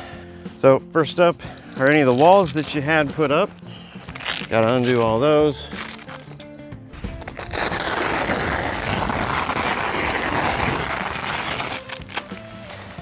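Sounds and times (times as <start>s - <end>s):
fabric handling: 1.6s - 6.4s, 7.1s - 13.0s
velcro strip ripping apart: 1.7s - 6.4s, 7.0s - 13.0s.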